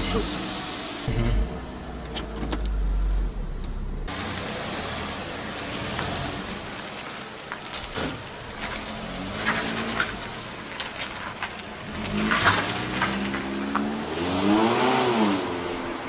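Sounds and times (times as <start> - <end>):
tyres hissing on wet pavement: 0.0 - 1.3, 4.1 - 16.0
car engine pulling away: 0.0 - 16.0
in-cabin car rumble: 0.0 - 16.0.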